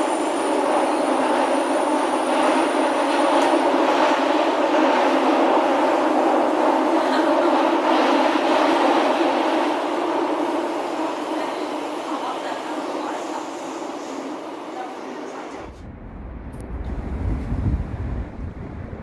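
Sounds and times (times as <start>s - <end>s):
subway train rumble and hum: 0.0s - 19.0s.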